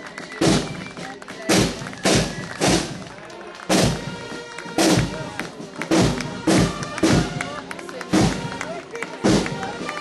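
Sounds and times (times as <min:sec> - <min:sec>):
marching band drum beats: 0:00.0 - 0:10.0.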